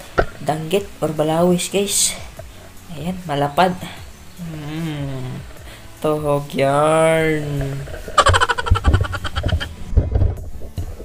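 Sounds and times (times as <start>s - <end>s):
gurgling underwater laugh: 8.2s - 9.7s.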